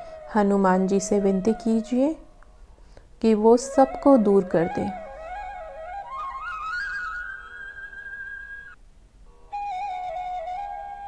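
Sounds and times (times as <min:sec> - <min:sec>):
flute holding a long note: 0:00.0 - 0:02.3, 0:03.3 - 0:08.8, 0:09.5 - 0:11.0.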